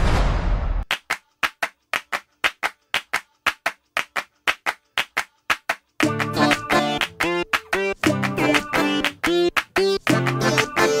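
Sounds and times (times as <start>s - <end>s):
hand claps in rhythm: 0.8s - 11.0s.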